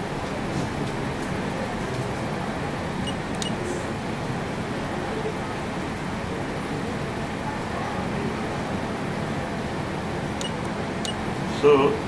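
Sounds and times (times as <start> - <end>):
room noise hum and hiss: 0.0 - 12.0.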